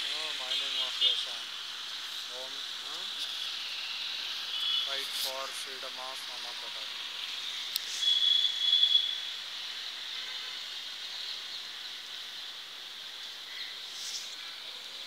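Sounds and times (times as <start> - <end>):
high-pitched insect chorus: 0.0 - 15.0
high insect buzz: 0.1 - 15.0.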